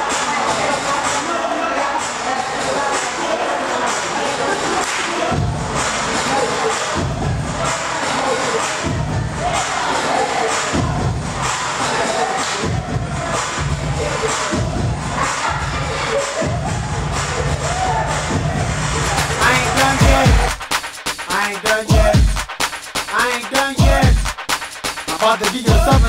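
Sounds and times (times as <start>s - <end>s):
crowd cheering and shouting: 0.0s - 24.3s
loud dance music with heavy bass: 0.0s - 26.0s.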